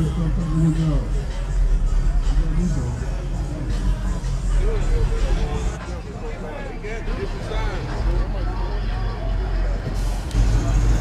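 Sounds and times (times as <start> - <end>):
car engine rumble: 0.0 - 11.0
faint voices: 0.0 - 11.0.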